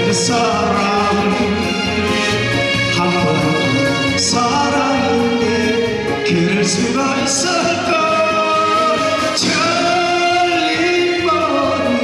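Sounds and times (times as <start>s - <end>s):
instrumental accompaniment: 0.0s - 12.0s
man singing into microphone: 0.0s - 12.0s.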